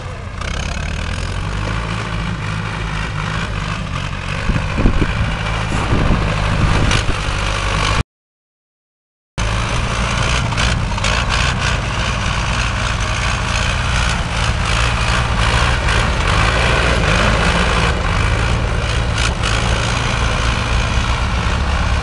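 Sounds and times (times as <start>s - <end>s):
tractor engine running: 0.0s - 8.0s, 9.4s - 22.0s.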